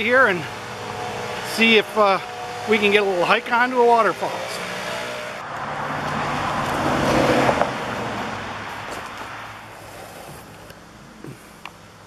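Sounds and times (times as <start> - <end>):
car passing by: 0.5 - 10.5.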